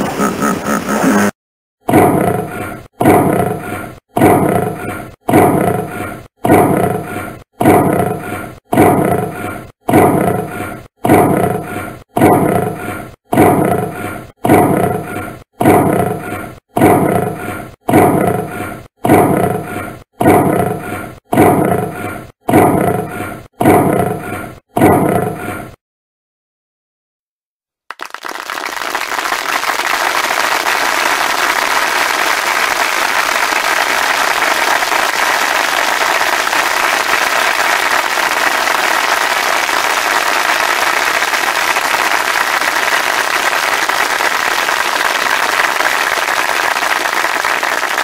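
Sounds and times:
lion roaring: 0:01.9 - 0:25.7.

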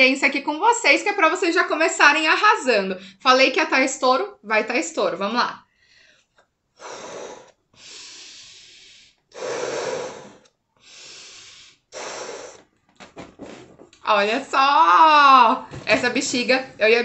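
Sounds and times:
person blowing up a balloon: 0:06.8 - 0:13.9.

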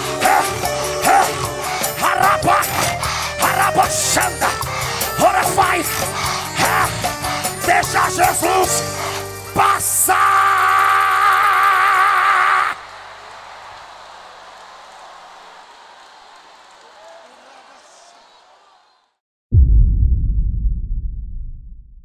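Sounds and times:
church worship band with voices: 0:00.0 - 0:10.3.

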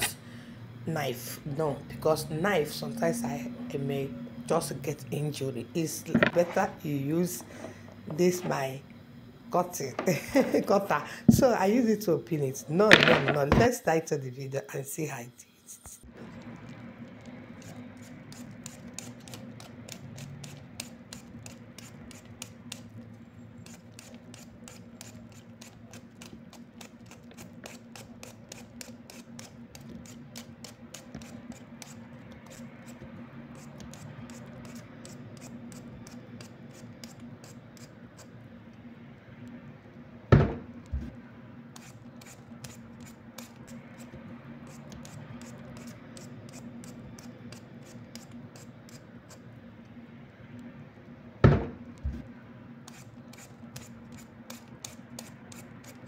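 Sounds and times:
low steady hum: 0:00.0 - 0:56.0
peeler scraping potato: 0:15.7 - 0:38.4, 0:41.8 - 0:49.6, 0:52.8 - 0:56.0
sharp knocks: 0:40.3 - 0:41.1, 0:51.4 - 0:52.2.

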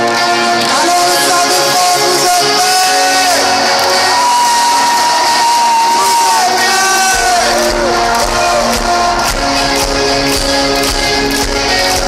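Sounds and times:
crowd noise: 0:00.0 - 0:12.0
rock band playing live: 0:00.0 - 0:12.0.

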